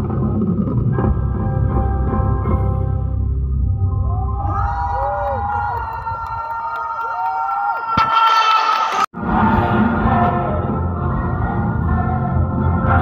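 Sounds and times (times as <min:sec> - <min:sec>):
live concert music with singing: 0:08.0 - 0:13.0.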